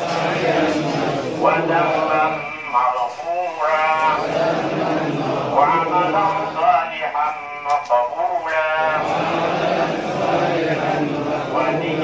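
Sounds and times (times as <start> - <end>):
crowd chanting in unison: 0.0 - 7.2, 7.9 - 12.0
man's voice: 0.0 - 9.5, 10.9 - 12.0.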